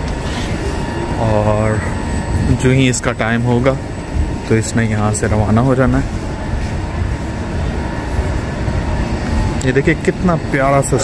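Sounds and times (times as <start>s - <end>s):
faint steady tones: 0.0s - 11.0s
low hum and rumble of train platform: 0.0s - 11.0s.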